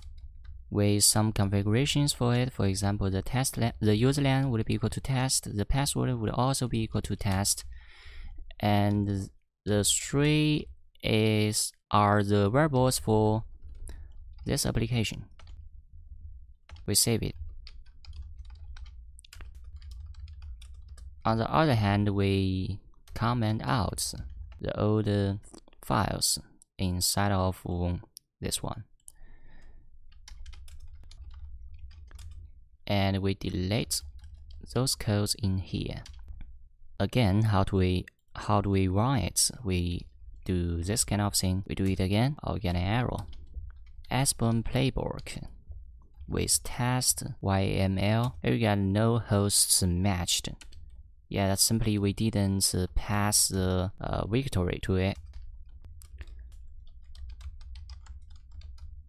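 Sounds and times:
low steady hum: 0.0s - 59.0s.

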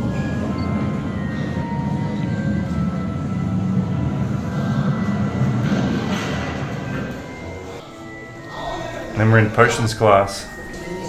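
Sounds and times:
escalator mechanical rumble: 0.0s - 7.8s
faint music notes: 0.0s - 11.0s.

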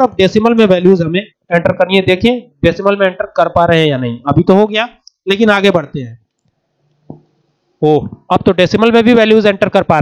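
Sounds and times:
man speaking: 0.0s - 6.2s, 7.8s - 10.0s.

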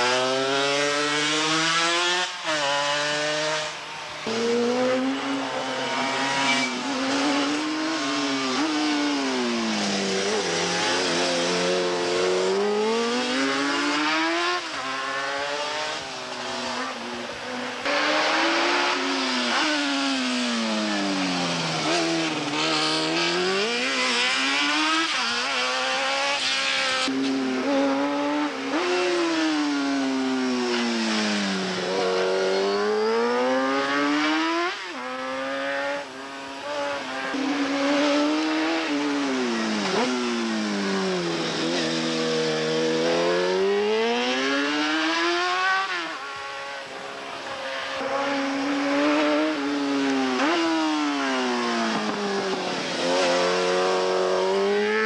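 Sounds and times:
racing motorcycle engines revving: 0.0s - 55.0s.

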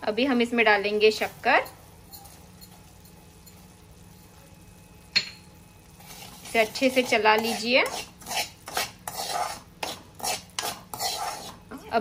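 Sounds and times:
spoon scraping in metal pan: 1.4s - 3.7s, 5.9s - 11.7s.

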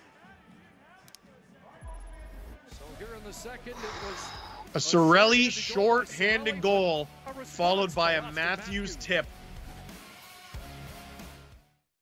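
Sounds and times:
background music: 0.0s - 11.8s.

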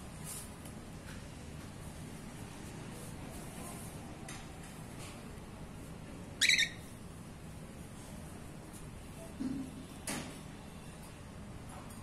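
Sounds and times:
cockatiel squawk: 6.4s - 6.8s.

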